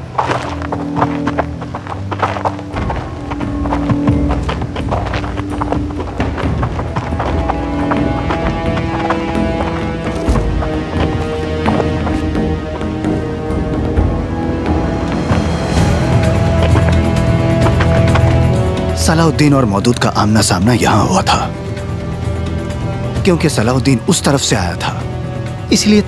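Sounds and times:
irregular clopping knocks: 0.0 - 19.0
dramatic background music: 0.0 - 26.0.

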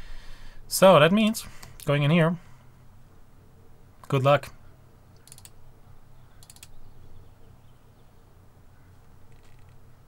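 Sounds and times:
mouse clicks: 5.2 - 5.6, 6.4 - 6.8.

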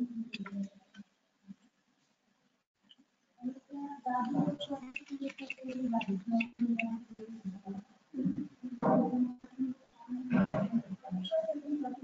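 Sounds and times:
low indistinct voice: 3.4 - 12.0.

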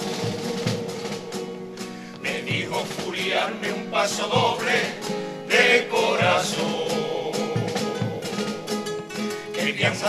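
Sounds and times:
guitars strumming: 0.0 - 10.0
man singing: 2.2 - 4.9, 5.8 - 8.7, 9.5 - 10.0.

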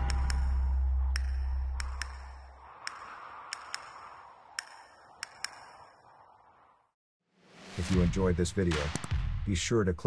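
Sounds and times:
deep bass drone: 0.0 - 2.6
sharp high pinging ticks: 0.0 - 6.2.

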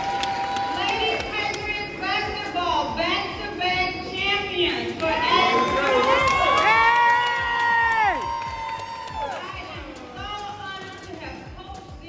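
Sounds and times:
audience cheering: 0.0 - 1.3, 5.2 - 9.5
high-pitched shouts: 5.1 - 9.7.

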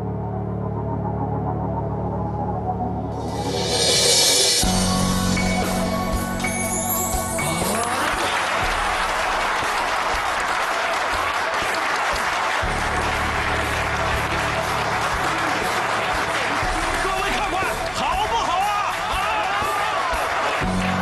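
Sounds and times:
background music: 0.0 - 21.0
audience applauding: 6.7 - 21.0.

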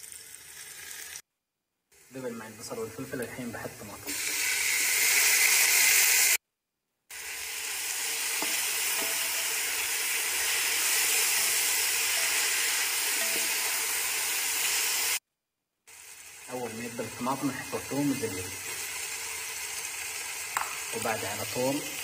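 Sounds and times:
vegetables sizzling in a pot: 0.0 - 1.2, 2.0 - 6.4, 7.1 - 15.2, 15.9 - 22.0.

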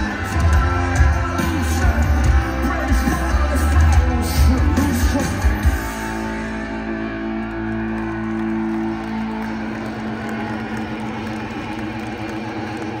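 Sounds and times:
electric guitar and bass chord: 0.0 - 11.2
large crowd cheering: 0.0 - 13.0.

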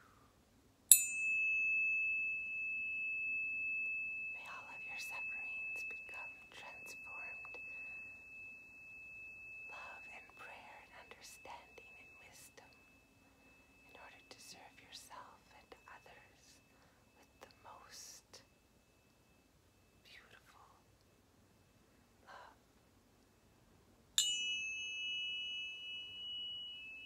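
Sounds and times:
tuning fork ringing: 0.9 - 20.4, 24.2 - 27.0
soft whispers: 4.4 - 8.2, 9.7 - 18.6, 20.0 - 21.0, 22.2 - 22.6.

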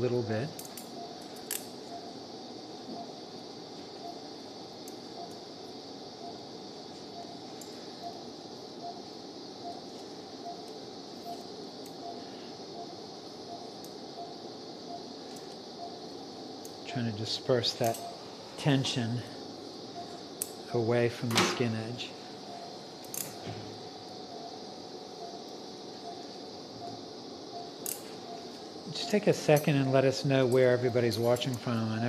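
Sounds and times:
background hum: 0.0 - 32.0
patient monitor beeps: 0.0 - 32.0.

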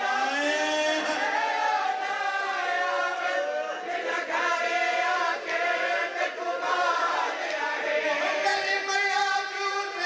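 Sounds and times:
men chanting a mourning lament: 0.0 - 10.0.

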